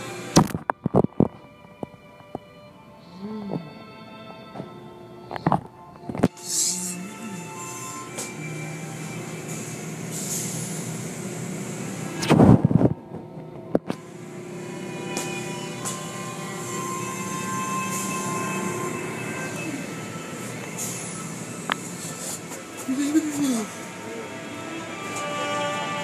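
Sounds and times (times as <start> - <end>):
car wash machinery humming: 0.0 - 0.4, 3.9 - 12.3, 13.0 - 26.0.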